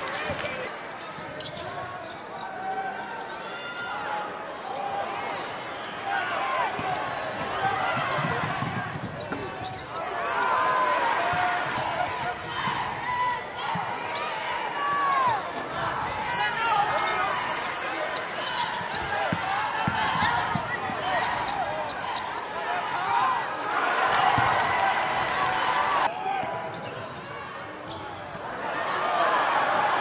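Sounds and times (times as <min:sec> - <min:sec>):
voices of players and crowd: 0:00.0 - 0:30.0
basketball bouncing: 0:19.0 - 0:21.0, 0:24.2 - 0:24.6.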